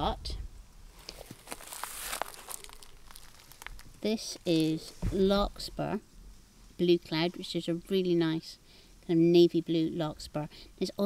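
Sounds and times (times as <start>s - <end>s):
crackly rustling and crunching: 0.9s - 6.0s.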